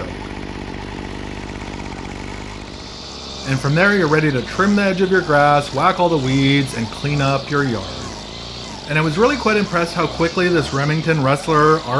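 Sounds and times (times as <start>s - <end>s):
trimmer engine idling: 0.0s - 11.9s.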